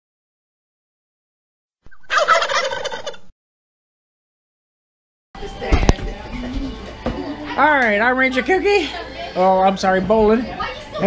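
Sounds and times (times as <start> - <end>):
turkey gobbling: 1.9 - 3.3.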